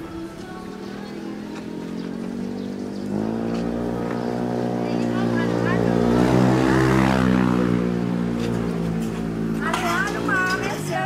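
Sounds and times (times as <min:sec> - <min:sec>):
vehicle engine passing by: 0:00.7 - 0:11.0.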